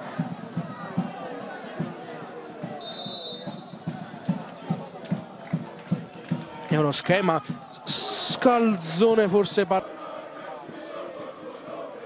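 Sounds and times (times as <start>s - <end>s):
spectators chatting: 0.0s - 12.0s
referee's whistle: 2.8s - 4.0s.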